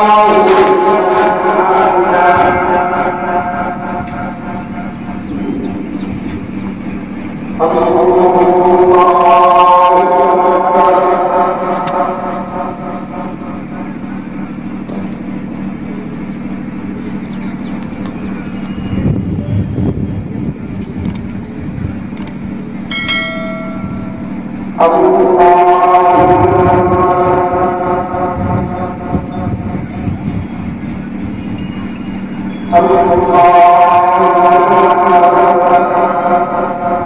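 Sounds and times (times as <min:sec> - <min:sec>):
man chanting over loudspeaker: 0:00.0 - 0:17.6, 0:23.1 - 0:37.0
steady low hum: 0:00.0 - 0:37.0
brief high chime: 0:22.9 - 0:24.4.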